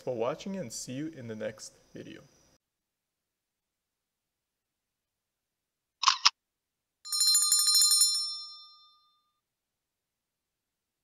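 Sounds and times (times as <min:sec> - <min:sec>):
small bell ringing rapidly: 0:07.1 - 0:09.3.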